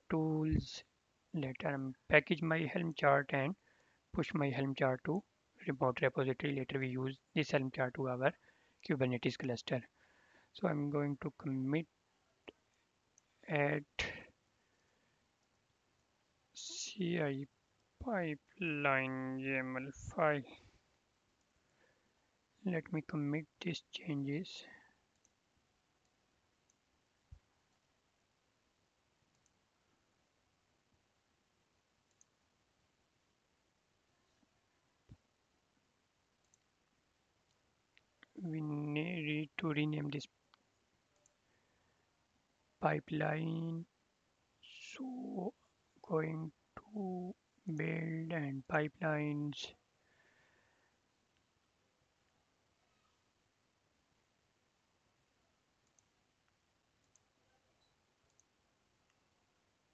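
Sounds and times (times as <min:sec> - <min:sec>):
faint computer mouse clicks: 0:25.1 - 0:25.4, 0:29.3 - 0:29.6, 0:32.0 - 0:32.4, 0:36.4 - 0:36.7, 0:55.8 - 0:59.2.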